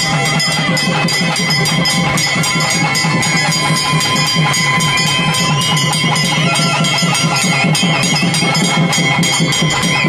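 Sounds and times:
drums beaten fast: 0:00.0 - 0:10.0
high wavering melody: 0:00.0 - 0:10.0
steady sustained tones: 0:00.0 - 0:10.0.

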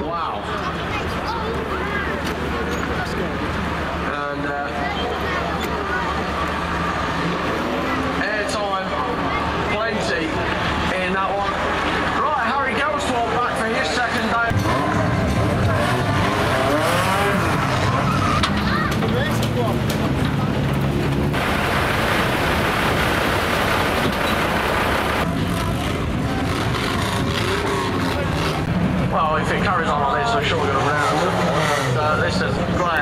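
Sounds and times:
racing car engines revving: 0:00.0 - 0:33.0
tyres skidding: 0:00.0 - 0:33.0
steady rushing noise: 0:00.6 - 0:31.3.

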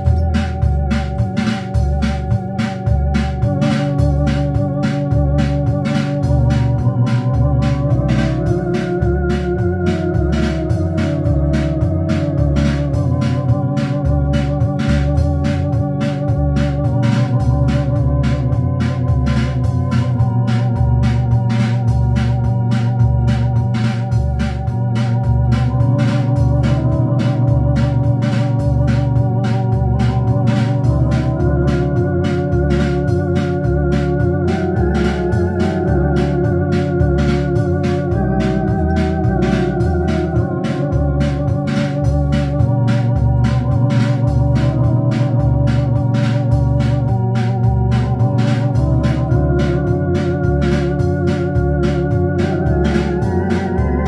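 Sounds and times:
electronic organ playing chords: 0:00.0 - 0:54.0
steady rhythm beat: 0:00.0 - 0:54.0.

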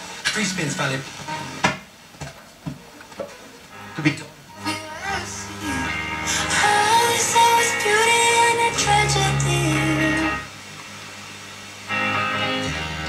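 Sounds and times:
song with singing on radio: 0:04.5 - 0:10.5.

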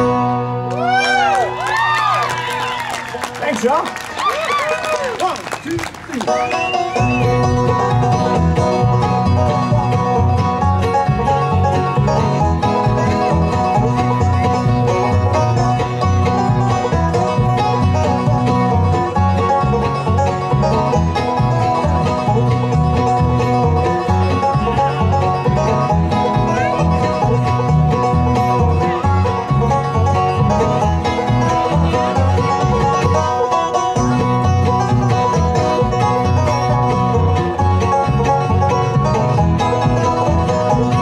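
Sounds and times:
acoustic guitar: 0:00.0 - 0:03.3, 0:06.1 - 0:41.0
banjo: 0:00.0 - 0:04.6, 0:05.2 - 0:41.0
fiddle: 0:00.0 - 0:41.0
upright bass: 0:00.0 - 0:41.0.

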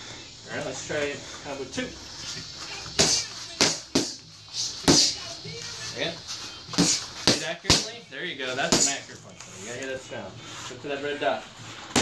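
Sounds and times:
gloved punches on focus mitts: 0:03.0 - 0:04.2, 0:06.7 - 0:07.9.

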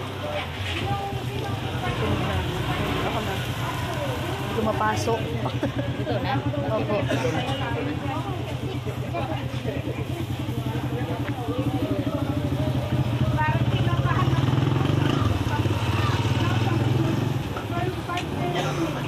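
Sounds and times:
nearby voices: 0:00.0 - 0:19.0.

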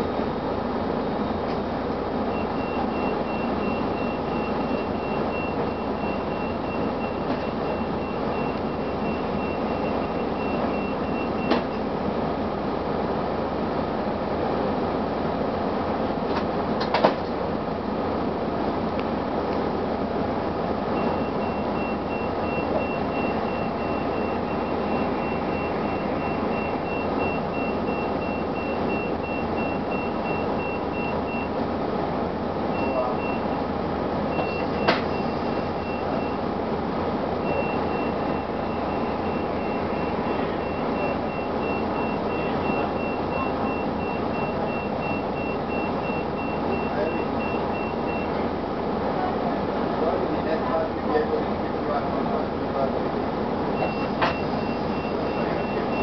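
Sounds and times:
diesel bus engine droning: 0:00.0 - 0:56.0
electronic warning beeps: 0:02.3 - 0:11.9, 0:21.0 - 0:31.6, 0:32.7 - 0:33.7, 0:34.3 - 0:36.6, 0:37.4 - 0:48.5, 0:53.8 - 0:56.0.

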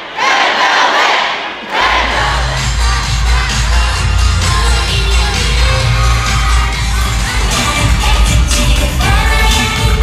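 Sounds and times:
crowd screaming and cheering: 0:01.4 - 0:10.0
pop music with heavy bass: 0:02.0 - 0:10.0.

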